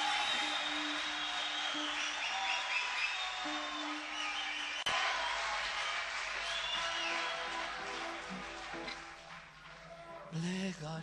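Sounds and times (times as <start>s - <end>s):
concert audience noise: 0.0s - 10.4s.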